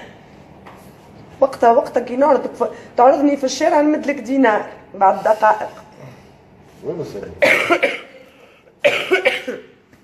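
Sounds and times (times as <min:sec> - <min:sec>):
woman coughing: 0:07.4 - 0:09.8.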